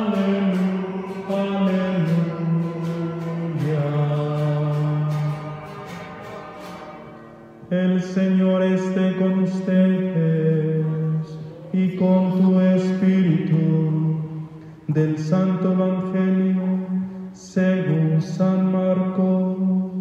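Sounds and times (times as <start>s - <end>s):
sung church chant with accompaniment: 0.0s - 20.0s.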